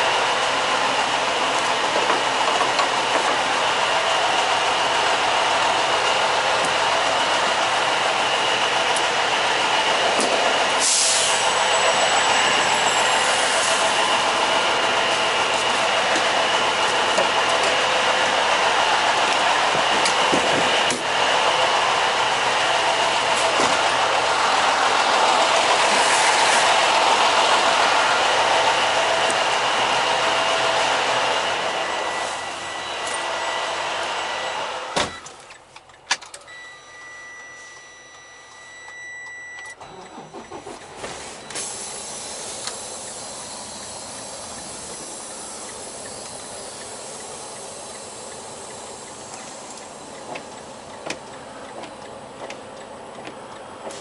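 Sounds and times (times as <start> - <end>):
diesel trucks idling: 0.0 - 36.5, 39.2 - 54.0
high electronic beep: 36.5 - 41.6.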